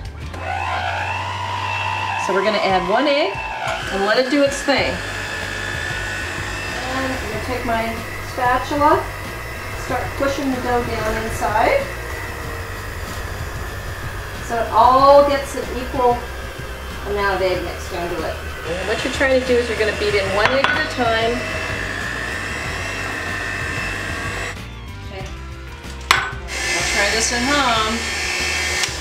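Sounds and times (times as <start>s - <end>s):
electric hand mixer whining: 0.0s - 24.8s, 26.1s - 29.0s.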